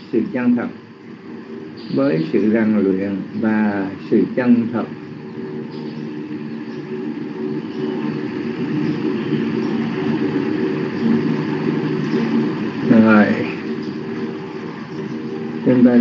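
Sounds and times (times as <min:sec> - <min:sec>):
mechanical hum: 0:00.0 - 0:16.0.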